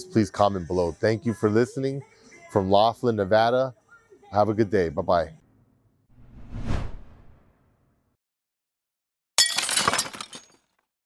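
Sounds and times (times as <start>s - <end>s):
glass fragments clinking: 9.4s - 10.7s
glass shattering: 9.4s - 10.8s.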